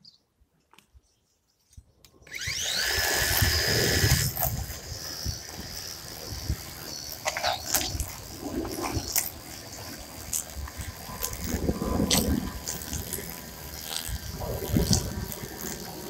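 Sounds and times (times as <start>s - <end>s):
electric string trimmer whining: 2.1s - 16.0s
sharp ticks: 2.3s - 16.0s.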